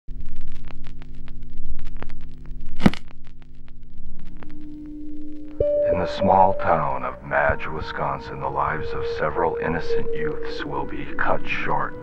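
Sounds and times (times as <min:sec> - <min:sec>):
film crackles and pops: 0:00.1 - 0:05.6.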